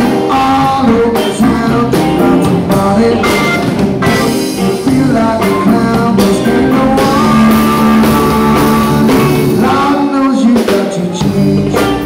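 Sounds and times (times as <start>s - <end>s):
drum hits: 0.0s - 9.9s
rock band playing: 0.0s - 12.0s.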